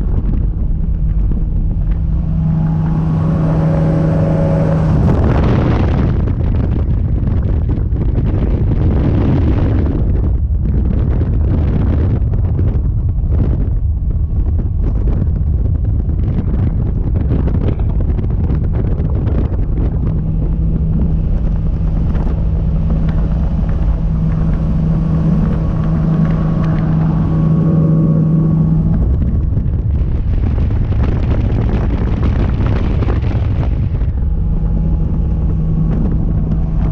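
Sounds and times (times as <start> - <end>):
outboard motor running: 0.0 - 36.9
wind buffeting microphone: 0.0 - 36.9.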